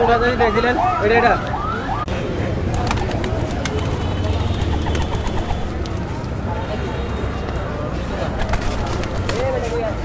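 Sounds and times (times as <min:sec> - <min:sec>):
crowded market hubbub: 0:00.0 - 0:10.0
pigeons cooing: 0:04.6 - 0:05.8.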